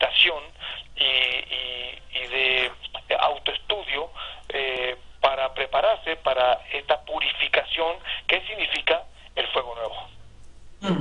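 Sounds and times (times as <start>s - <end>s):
person talking over telephone: 0.0s - 10.1s.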